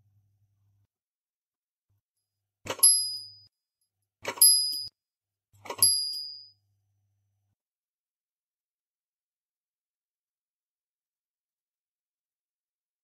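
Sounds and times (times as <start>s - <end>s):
small bell ringing: 2.7s - 3.5s, 4.4s - 4.9s, 5.7s - 6.6s.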